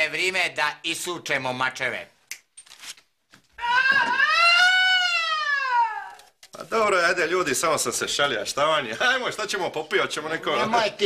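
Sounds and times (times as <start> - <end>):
high-pitched wailing cry: 3.6 - 6.3.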